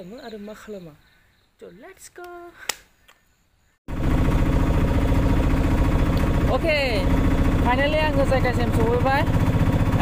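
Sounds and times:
auto-rickshaw engine running: 3.9s - 10.0s.

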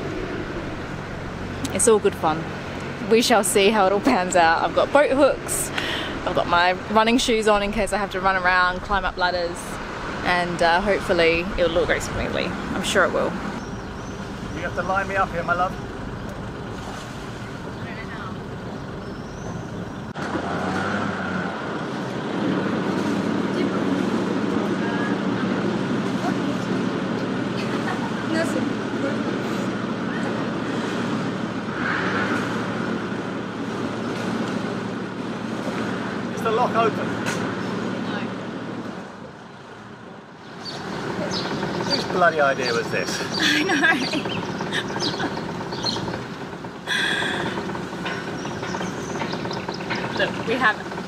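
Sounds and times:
boat engine humming: 0.0s - 51.0s
voices: 1.6s - 16.5s, 17.4s - 19.7s, 23.3s - 30.7s, 40.6s - 51.0s.

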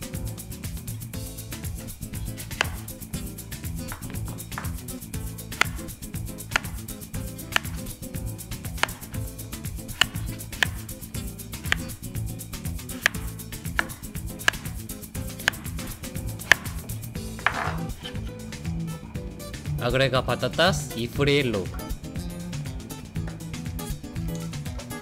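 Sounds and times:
background music: 0.0s - 25.0s
knife cutting on wooden board: 2.0s - 18.4s.

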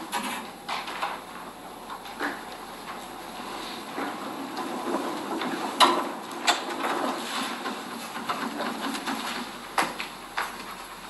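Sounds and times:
rustle of people moving: 0.2s - 11.0s.

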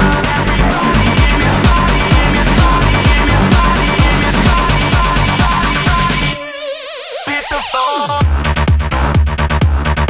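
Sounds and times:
house music with kick drum: 0.0s - 6.6s, 7.2s - 10.0s.

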